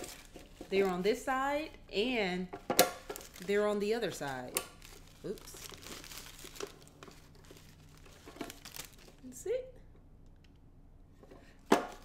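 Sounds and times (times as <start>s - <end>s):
packing sheet crinkling: 0.0s - 1.4s, 3.0s - 9.4s.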